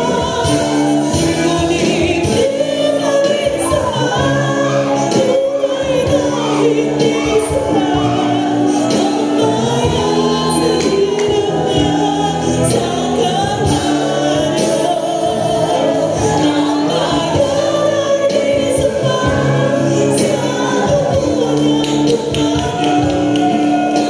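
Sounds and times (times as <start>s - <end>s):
choir singing gospel song: 0.0s - 24.0s.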